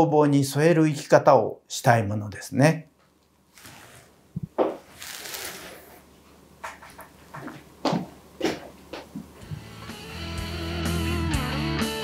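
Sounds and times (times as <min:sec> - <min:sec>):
sharp handling noises at a desk: 0:06.6 - 0:09.3.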